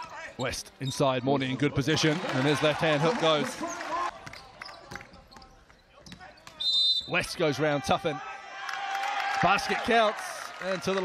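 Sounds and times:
referee's whistle blast: 0:06.6 - 0:07.2.

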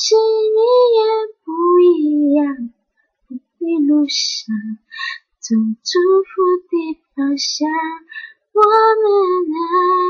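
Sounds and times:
woman singing unaccompanied: 0:00.0 - 0:02.7, 0:03.3 - 0:10.0.

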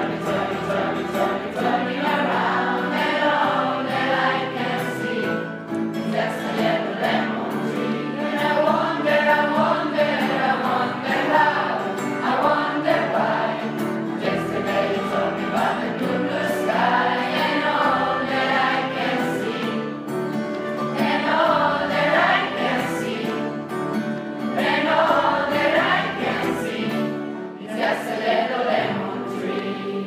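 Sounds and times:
mixed choir singing: 0:00.0 - 0:30.0.

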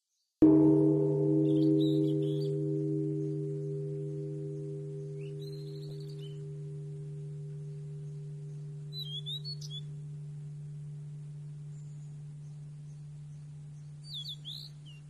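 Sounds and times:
bird chirps: 0:00.4 - 0:15.0
struck bell-like metal tone: 0:00.4 - 0:15.0.

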